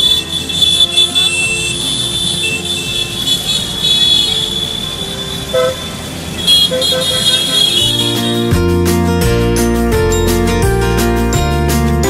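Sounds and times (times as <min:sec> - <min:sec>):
guitar music: 0:00.0 - 0:12.0
short horn toot: 0:00.8 - 0:08.5.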